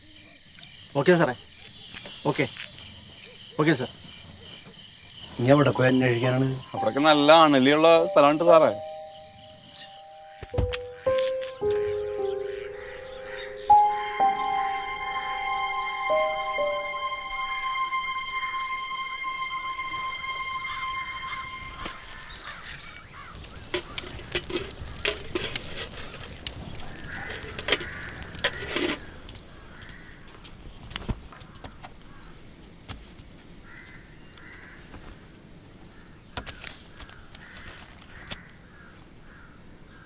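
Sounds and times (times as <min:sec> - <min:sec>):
faint bird calls: 0:06.1 - 0:15.0
held musical note: 0:06.7 - 0:22.2.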